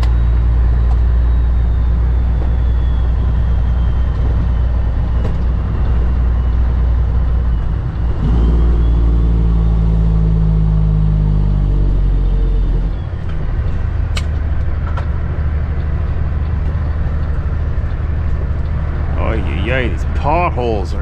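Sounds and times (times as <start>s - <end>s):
diesel truck engine: 0.0s - 21.0s.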